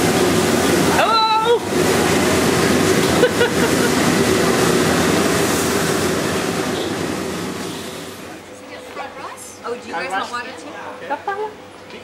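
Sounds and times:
gas wok burners roaring: 0:00.0 - 0:12.0.

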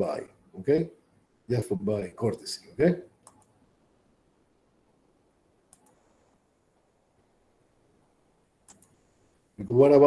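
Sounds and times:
short clicks: 0:03.2 - 0:03.6, 0:05.7 - 0:06.0, 0:08.7 - 0:09.0.

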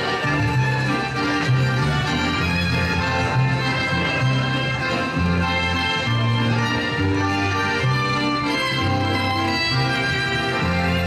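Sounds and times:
bass line: 0:00.0 - 0:11.0
violins: 0:00.0 - 0:11.0.

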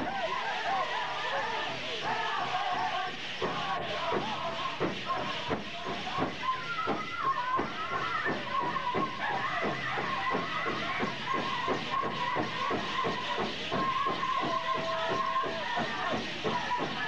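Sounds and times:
high held singing voices: 0:00.0 - 0:17.0
big drum steady beat: 0:02.0 - 0:17.0.

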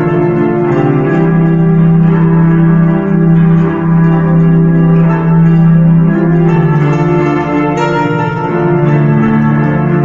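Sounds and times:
digital keyboard chords: 0:00.0 - 0:10.0.

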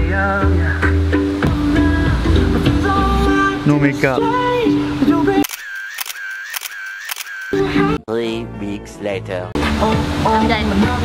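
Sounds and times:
music: 0:00.0 - 0:05.4, 0:07.6 - 0:11.0
camera shutter clicks: 0:05.4 - 0:07.7.

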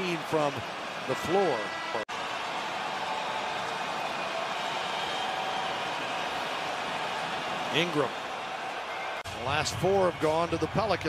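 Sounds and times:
arena crowd hum: 0:00.0 - 0:11.0.

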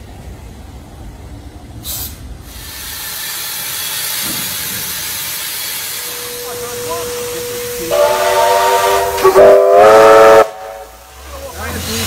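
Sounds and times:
steam hissing: 0:01.7 - 0:12.0
steam locomotive whistle: 0:06.0 - 0:11.2.

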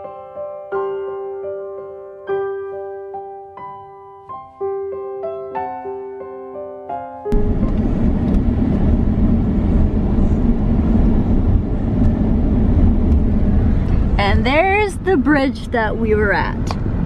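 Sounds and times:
piano music: 0:00.0 - 0:11.7
car road and engine noise: 0:07.3 - 0:17.0.

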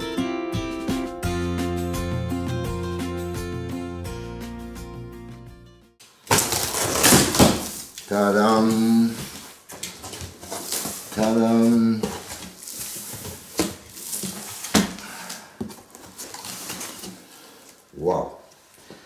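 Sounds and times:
packing tape ripping: 0:06.2 - 0:08.7, 0:09.6 - 0:11.4, 0:12.1 - 0:15.4
cardboard flaps scraping and knocking: 0:06.3 - 0:17.2.

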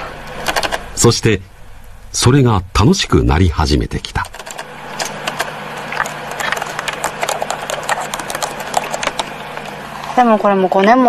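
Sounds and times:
computer keyboard typing: 0:00.4 - 0:00.8, 0:04.2 - 0:09.3.

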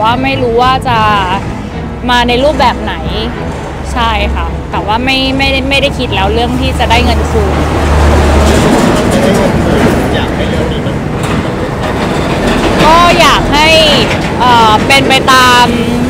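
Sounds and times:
road traffic passing: 0:00.0 - 0:16.0.

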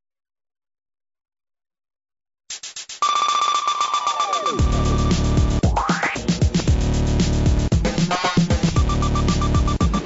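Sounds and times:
electronic theme music: 0:03.0 - 0:10.0.

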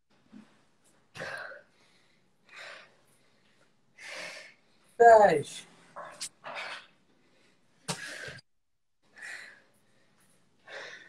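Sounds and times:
woman breathing hard: 0:01.2 - 0:05.0, 0:09.1 - 0:11.0.

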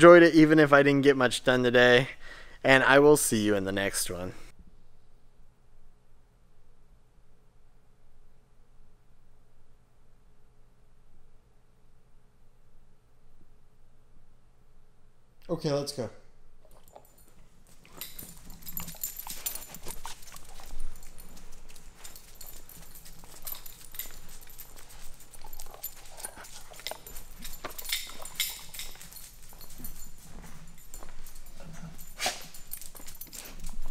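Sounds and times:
dog chewing a rubber toy: 0:16.6 - 0:31.7
dog claws clicking on concrete: 0:16.6 - 0:33.9.

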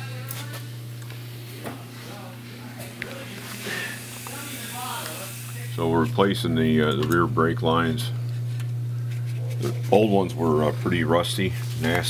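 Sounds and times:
faint voices: 0:00.0 - 0:06.4
low hum: 0:00.0 - 0:12.0
high hiss: 0:03.6 - 0:05.7
man speaking: 0:05.7 - 0:08.2, 0:09.6 - 0:12.0.

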